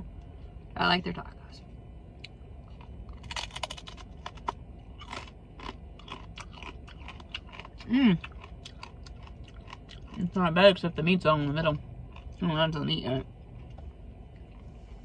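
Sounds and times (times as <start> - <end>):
crunching crispy taco: 2.6 - 10.6.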